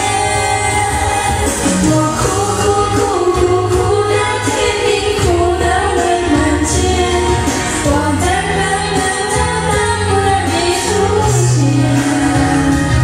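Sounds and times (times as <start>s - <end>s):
pop backing track: 0.0s - 13.0s
woman singing karaoke: 0.0s - 13.0s.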